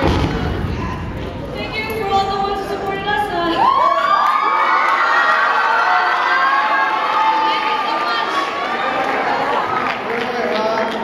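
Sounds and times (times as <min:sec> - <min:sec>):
audience cheering and screaming: 0:03.4 - 0:10.0.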